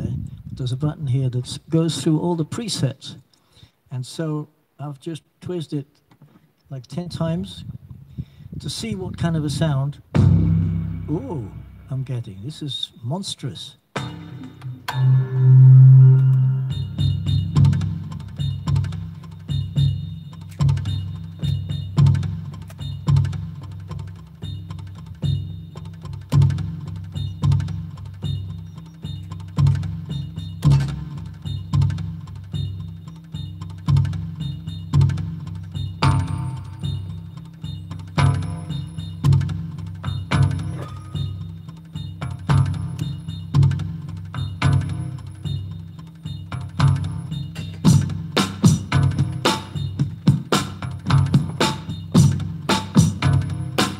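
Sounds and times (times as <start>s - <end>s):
deep drum boom: 10.1s - 12.1s
electronic hand drum strikes: 10.2s - 12.0s, 14.0s - 53.9s.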